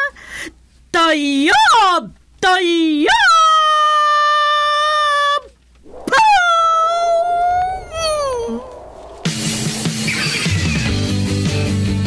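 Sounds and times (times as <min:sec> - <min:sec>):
long high howling cries: 0:05.8 - 0:10.3.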